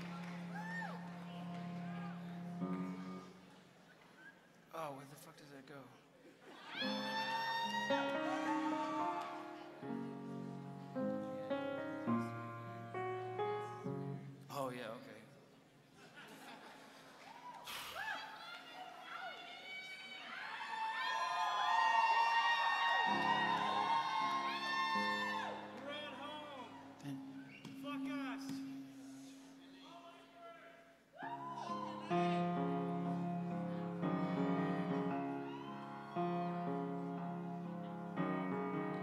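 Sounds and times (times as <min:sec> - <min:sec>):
audience whooping and cheering: 0:00.0 - 0:03.3, 0:06.5 - 0:10.4, 0:17.2 - 0:27.5, 0:31.2 - 0:38.2.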